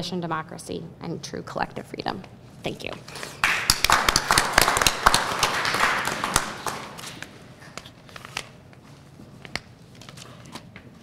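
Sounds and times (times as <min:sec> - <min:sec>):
audience applauding: 0:03.4 - 0:07.3.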